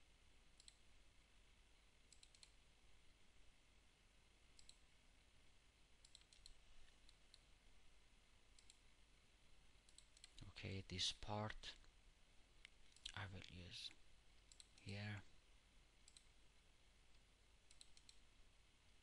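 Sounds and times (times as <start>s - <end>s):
computer mouse clicks: 0.6s - 0.8s, 2.1s - 2.6s, 4.6s - 4.8s, 6.0s - 7.5s, 8.6s - 8.8s, 9.8s - 10.5s, 14.4s - 14.9s, 16.0s - 16.3s, 17.7s - 18.2s.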